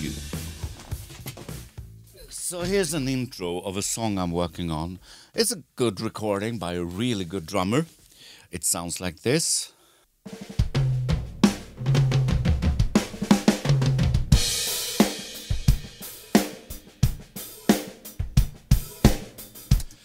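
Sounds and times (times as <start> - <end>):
drum beat of kick snare hi-hat: 0.0 - 3.2, 10.3 - 20.0.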